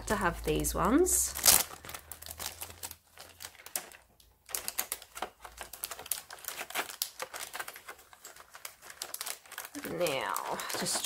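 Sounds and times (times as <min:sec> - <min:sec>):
plastic packaging crackling: 0:00.0 - 0:11.0.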